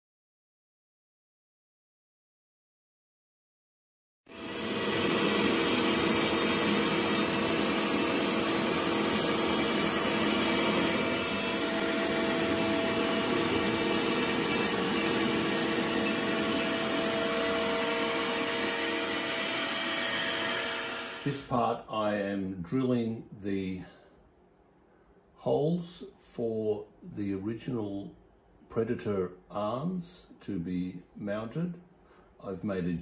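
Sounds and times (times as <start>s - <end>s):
cnc spindle whine: 4.3s - 21.5s
dust extraction vacuum rushing: 4.3s - 21.5s.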